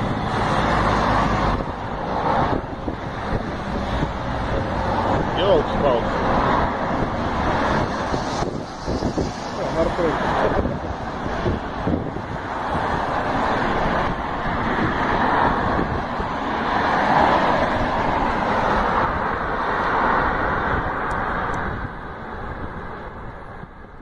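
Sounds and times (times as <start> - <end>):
road traffic passing: 0.0 - 24.0.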